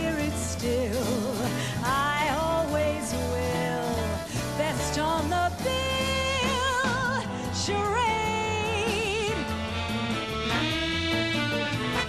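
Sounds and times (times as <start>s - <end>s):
woman singing a ballad: 0.0s - 9.8s
live band playing: 0.0s - 12.0s.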